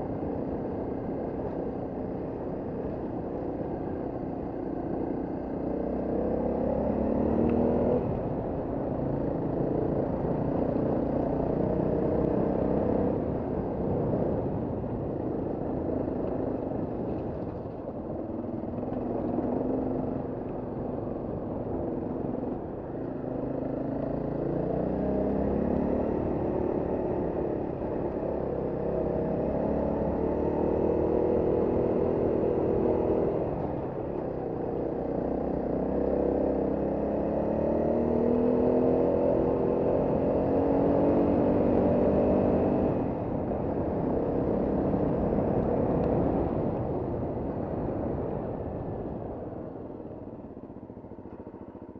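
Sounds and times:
motorcycle engine revving: 4.9s - 14.5s, 15.5s - 51.9s.

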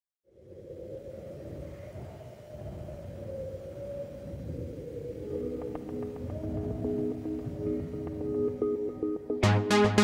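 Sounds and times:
light ticks: 5.5s - 6.4s
soft synth chord: 7.7s - 10.0s.

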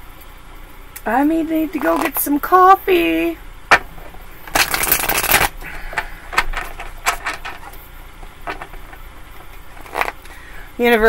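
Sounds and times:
cards riffle-shuffled: 4.5s - 5.5s.

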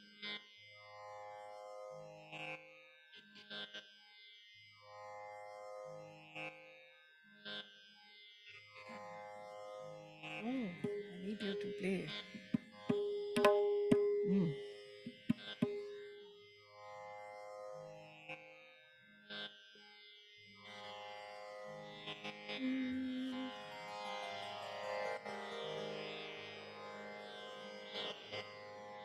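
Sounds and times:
soft indian classical instrumental: 0.0s - 29.0s.

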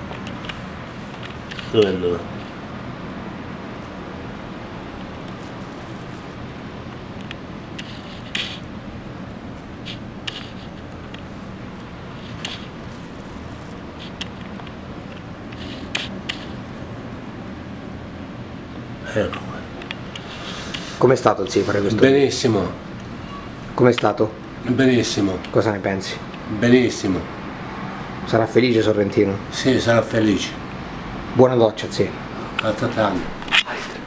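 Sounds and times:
low room hum: 0.0s - 34.0s
faint clicks and scrapes: 0.1s - 2.6s, 7.2s - 8.7s, 9.8s - 16.6s.

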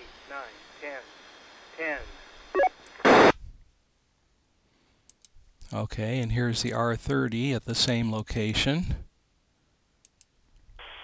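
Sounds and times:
radio static burst: 0.0s - 3.4s, 10.8s - 11.0s.

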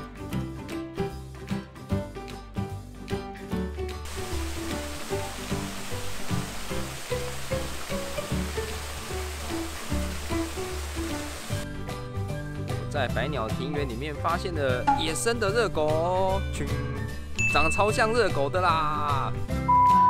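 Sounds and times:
background music: 0.0s - 20.0s
waterfall splashing over rocks: 4.1s - 11.6s.

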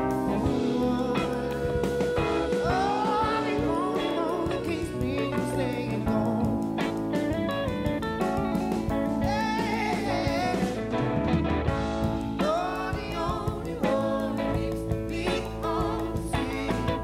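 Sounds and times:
man singing lead: 0.0s - 7.5s, 8.4s - 11.1s, 12.1s - 17.0s
live pop band playing: 0.0s - 17.0s.

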